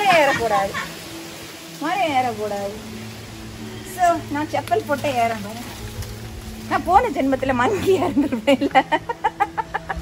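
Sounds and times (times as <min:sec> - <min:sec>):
woman laughing: 0:00.0 - 0:01.0, 0:07.7 - 0:10.0.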